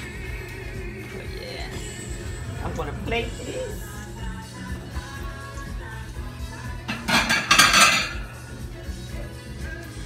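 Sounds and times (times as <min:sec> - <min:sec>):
plates and dishes clattering: 0:06.9 - 0:08.3.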